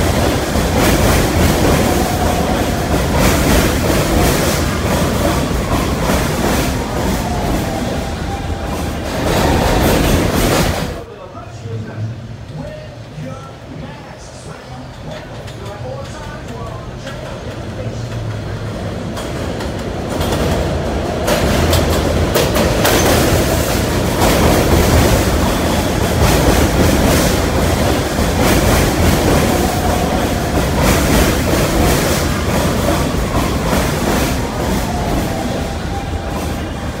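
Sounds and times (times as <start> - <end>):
subway train pulling in: 0.0 - 37.0
wheels clacking over rail joints: 14.9 - 37.0.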